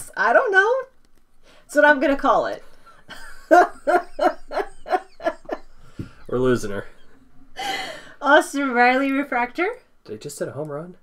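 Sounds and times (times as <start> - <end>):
woman laughing hard: 3.1 - 5.8.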